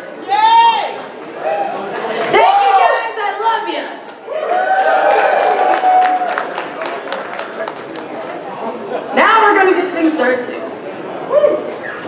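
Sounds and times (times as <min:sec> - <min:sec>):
crowd noise in hall: 0:00.0 - 0:12.0
people clapping: 0:04.1 - 0:08.8.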